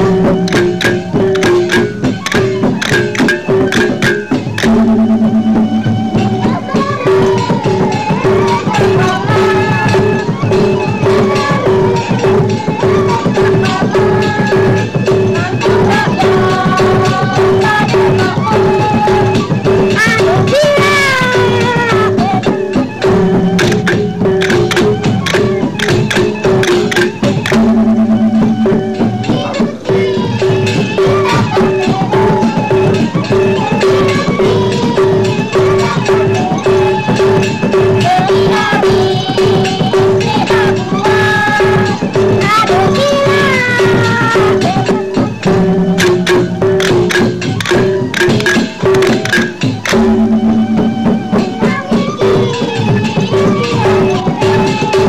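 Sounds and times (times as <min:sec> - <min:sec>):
barrel drums beaten: 0:00.0 - 0:55.0
held pitched notes: 0:00.0 - 0:55.0
metal percussion struck: 0:00.0 - 0:55.0.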